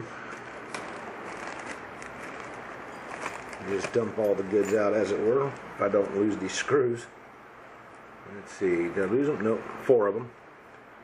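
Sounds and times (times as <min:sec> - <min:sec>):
plastic bag rustling: 0:00.0 - 0:05.6.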